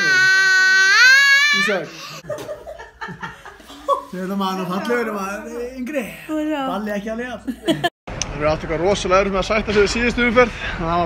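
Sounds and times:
boy squealing: 0:00.0 - 0:02.2.

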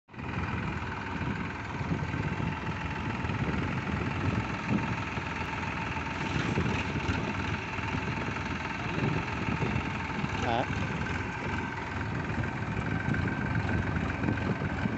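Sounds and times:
tractor engine running under load: 0:00.1 - 0:14.9.

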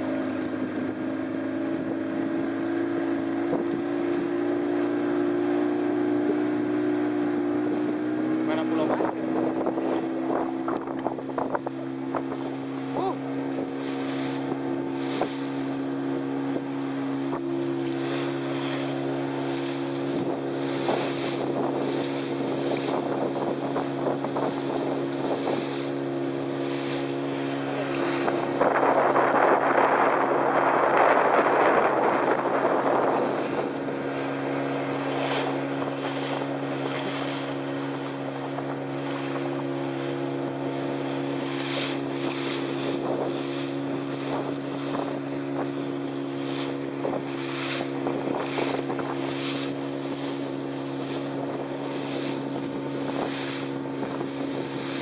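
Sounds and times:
boat motor droning: 0:00.0 - 0:55.0
hull rushing through water: 0:00.0 - 0:55.0
wind on microphone: 0:00.0 - 0:55.0.

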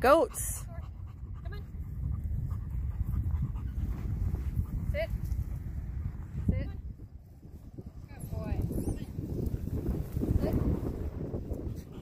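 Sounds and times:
dog panting: 0:00.0 - 0:06.7.

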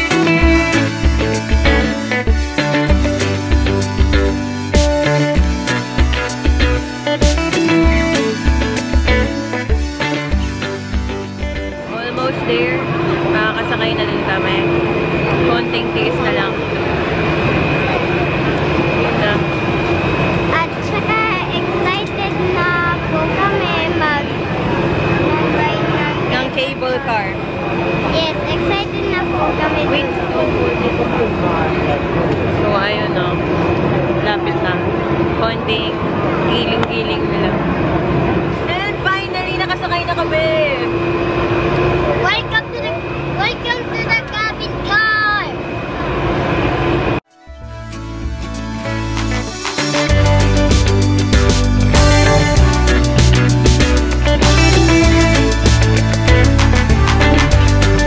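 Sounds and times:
thin high whine: 0:00.0 - 0:50.1
steady mechanical hum: 0:11.8 - 0:47.2
crowd chatter: 0:11.9 - 0:46.8.

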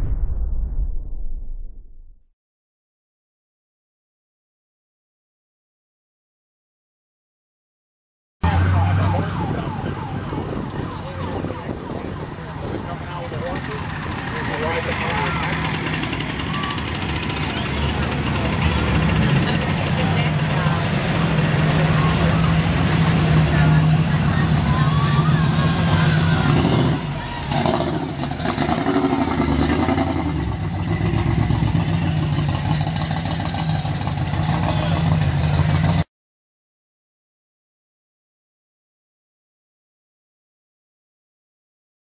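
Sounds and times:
people talking: 0:08.4 - 0:29.2, 0:33.4 - 0:36.0
car engine idling: 0:10.0 - 0:36.0.

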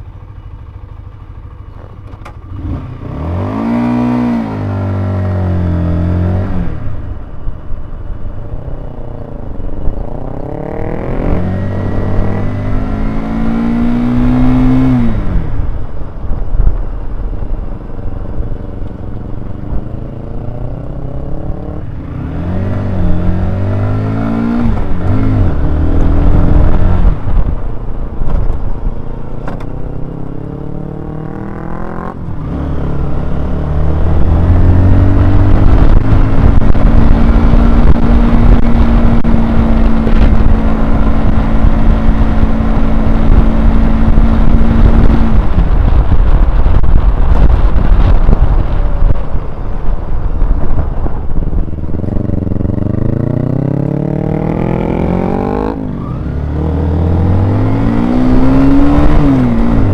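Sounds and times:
motorcycle engine while riding: 0:00.0 - 0:59.9.

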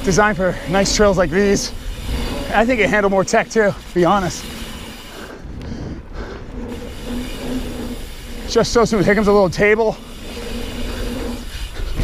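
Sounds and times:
bike tyre rumble and rattle: 0:00.0 - 0:12.0.

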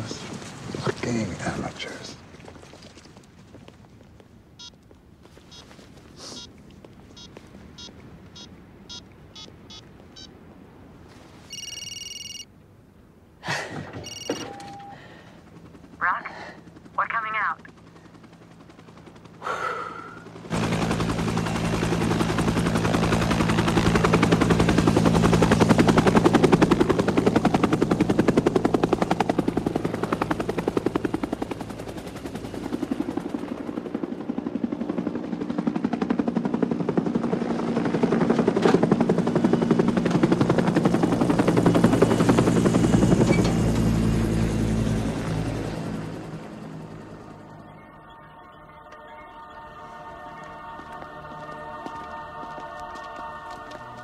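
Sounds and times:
helicopter rotor chopping: 0:14.1 - 0:47.7, 0:49.7 - 0:54.0.

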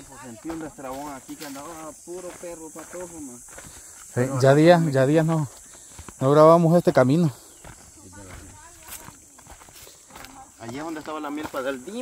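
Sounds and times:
sandal footsteps on dirt: 0:00.0 - 0:12.0
faint voices: 0:07.6 - 0:12.0.

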